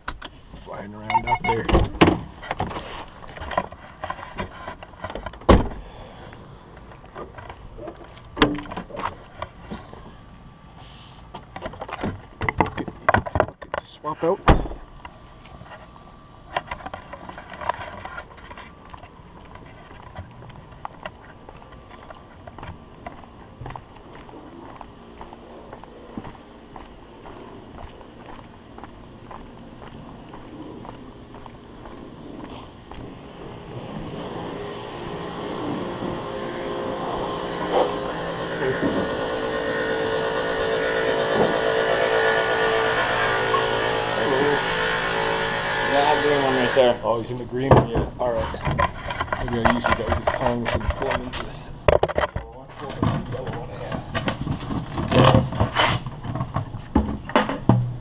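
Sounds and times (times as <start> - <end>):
steady mechanical hum: 0.0 - 58.0
footsteps on pavement: 18.2 - 33.6.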